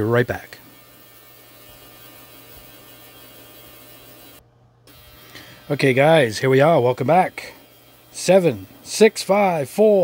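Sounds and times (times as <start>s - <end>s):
ultrasonic cleaner humming: 0.0s - 10.0s.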